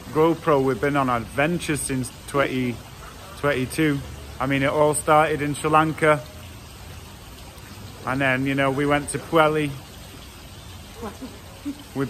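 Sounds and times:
steady background hiss: 0:00.0 - 0:12.0
man speaking: 0:03.4 - 0:06.3.

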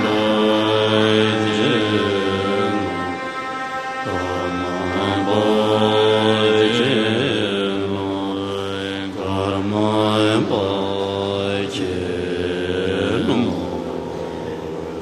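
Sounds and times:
monks chanting in deep voices: 0:00.0 - 0:15.0.

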